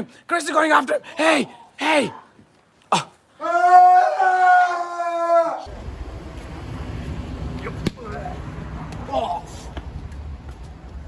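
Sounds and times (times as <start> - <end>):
street noise with low rumble: 1.8 - 11.0
person yelling: 2.9 - 5.6.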